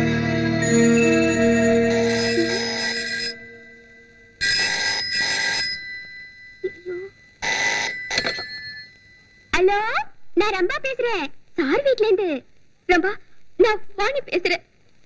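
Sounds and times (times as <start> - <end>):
held music chord: 0.0 - 4.4
telephone bell ringing: 0.6 - 9.5.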